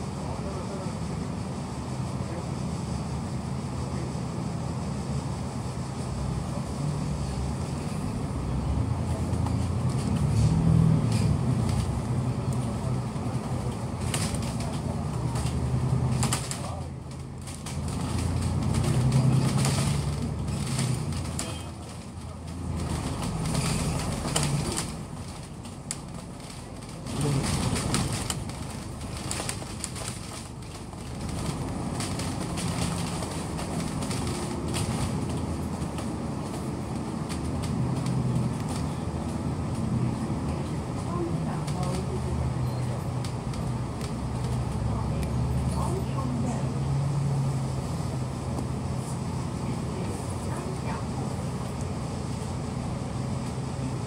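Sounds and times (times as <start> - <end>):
bus engine and road rumble: 0.0 - 54.0
rattles and clicks from bus body: 0.2 - 54.0.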